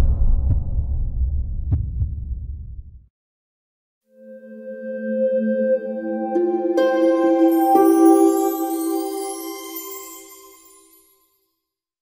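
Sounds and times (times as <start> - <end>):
deep rumbling boom: 0.0 - 3.1.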